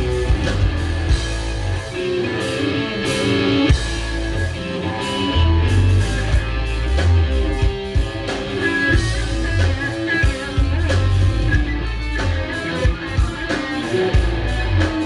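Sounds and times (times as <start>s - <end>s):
bass guitar: 0.0s - 15.0s
drum kit: 0.0s - 15.0s
electric guitars: 0.0s - 15.0s.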